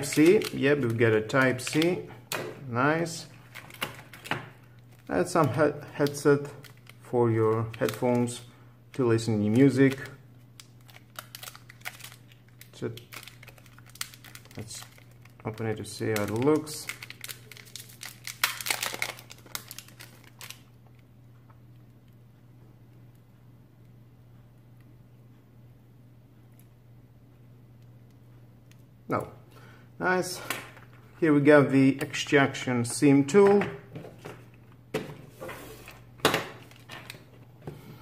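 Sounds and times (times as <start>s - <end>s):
plastic wrapping crinkling: 0.0s - 2.0s, 3.2s - 21.0s, 35.9s - 37.4s.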